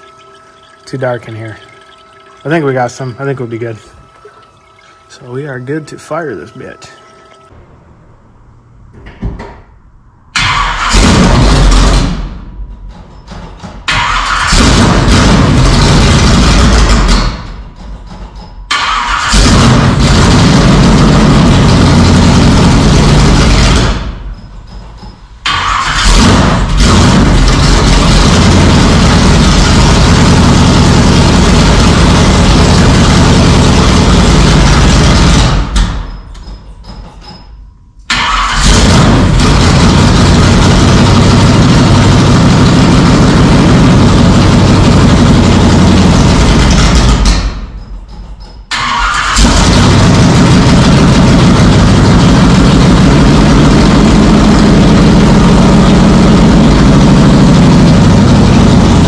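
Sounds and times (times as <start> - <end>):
pickup engine starting and running: 10.3 - 12.4, 13.9 - 17.6, 18.7 - 24.2, 25.4 - 35.9, 38.1 - 47.6, 48.7 - 59.0.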